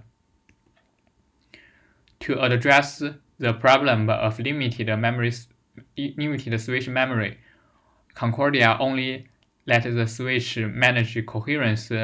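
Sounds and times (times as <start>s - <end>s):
soft breath: 1.4s - 2.1s, 7.4s - 8.1s.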